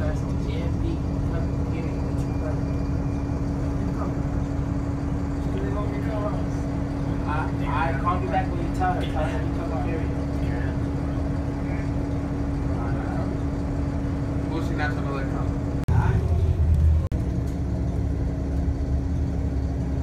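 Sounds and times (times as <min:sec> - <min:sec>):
faint passenger voices: 0:00.0 - 0:17.1
vehicle interior hum and rumble: 0:00.0 - 0:20.0.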